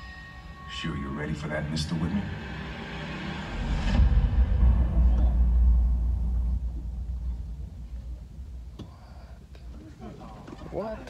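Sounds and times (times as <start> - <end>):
deep bass rumble: 1.3 - 9.8.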